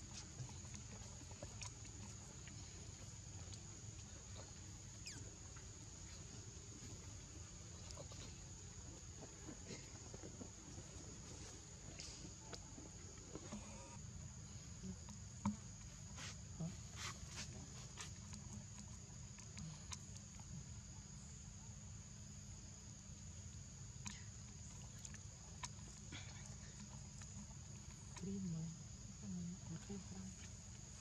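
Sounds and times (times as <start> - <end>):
insects chorus: 0.0 - 31.0
rustles: 14.9 - 20.6.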